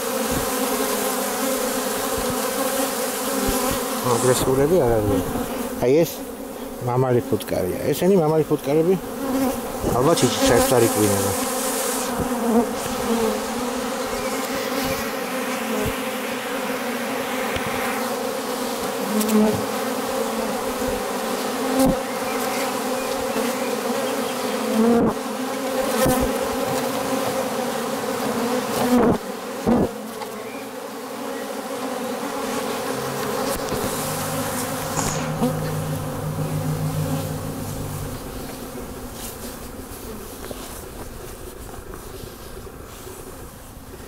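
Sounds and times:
honeybees buzzing: 0.0 - 44.0.

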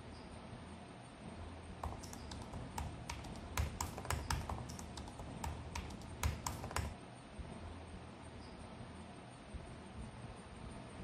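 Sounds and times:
laptop keyboard typing: 1.8 - 7.0.

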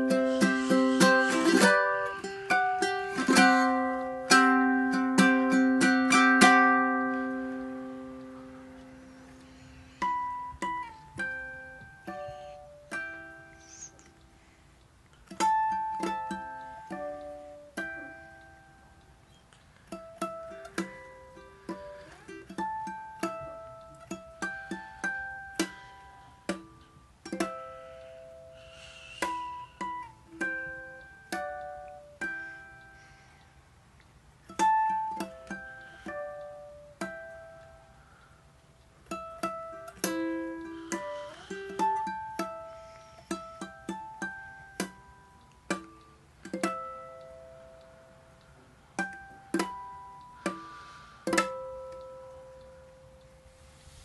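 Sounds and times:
ukulele plucked notes: 0.0 - 14.5, 15.1 - 33.4, 34.4 - 53.7
ukulele strummed chords: 0.0 - 14.5, 15.1 - 33.4, 34.4 - 53.4.

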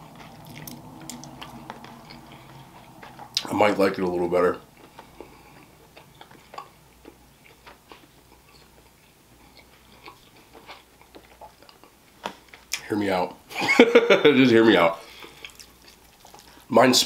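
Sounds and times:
person chewing food: 0.0 - 12.8, 15.0 - 16.7.

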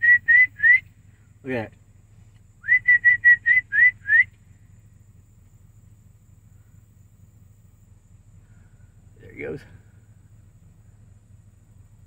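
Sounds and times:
person whistling short notes: 0.0 - 0.8, 2.6 - 4.3
faint low hum: 0.0 - 12.0.

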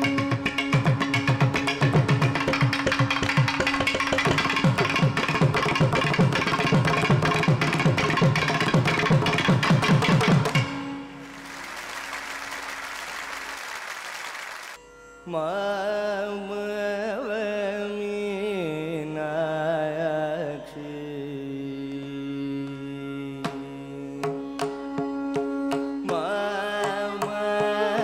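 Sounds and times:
applause: 11.2 - 14.8.

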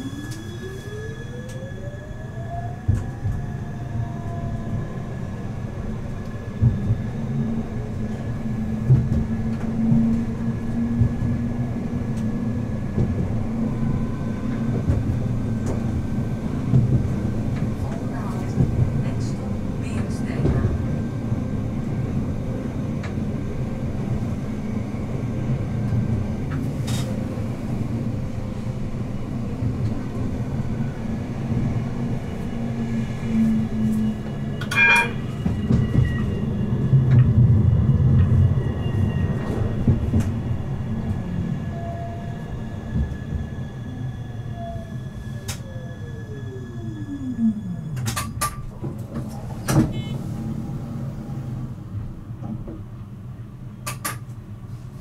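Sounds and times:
tram wheels rumbling on rail: 0.0 - 55.0
brief ring: 34.7 - 35.2.

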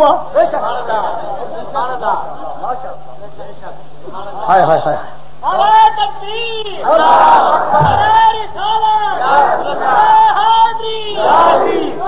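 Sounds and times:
crowd of men chanting: 6.8 - 8.4, 9.0 - 10.4, 11.1 - 12.0.

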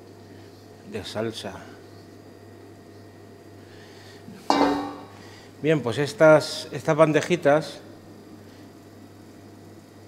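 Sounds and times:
low kitchen hum: 0.0 - 10.0
cookware clanking: 4.5 - 5.1.

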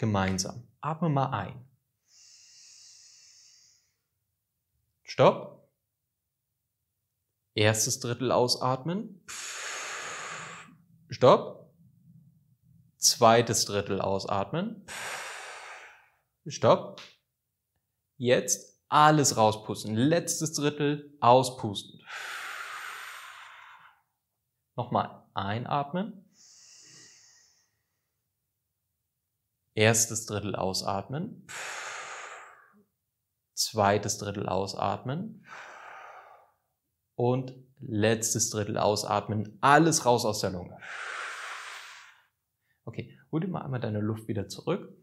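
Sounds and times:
man breathing in deeply: 2.0 - 4.1, 9.3 - 11.0, 14.9 - 16.3, 22.0 - 24.1, 26.3 - 28.0, 31.5 - 32.9, 35.4 - 36.8, 40.8 - 42.8
man exhaling hard: 9.3 - 10.9, 14.9 - 16.2, 22.0 - 24.1, 31.5 - 32.9, 35.4 - 36.7, 40.8 - 42.4.

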